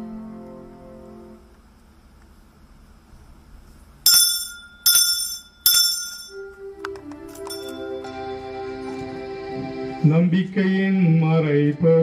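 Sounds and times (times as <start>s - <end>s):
altar bell ringing: 4.1s - 6.6s, 7.3s - 8.2s.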